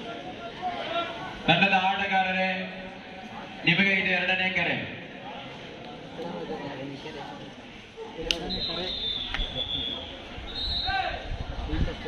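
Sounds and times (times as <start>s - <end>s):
man calling over a loudspeaker: 0.0s - 2.8s, 3.6s - 5.0s.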